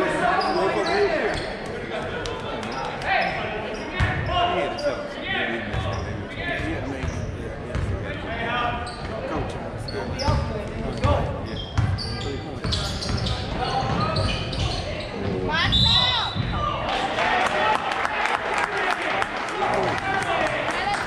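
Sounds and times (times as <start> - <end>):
chatter of voices: 0.0 - 17.9, 18.5 - 21.0
shoe squeaks: 0.2 - 1.7, 5.8 - 6.2, 8.8 - 9.2, 9.8 - 16.5
basketball bouncing on gym floor: 15.7 - 16.7.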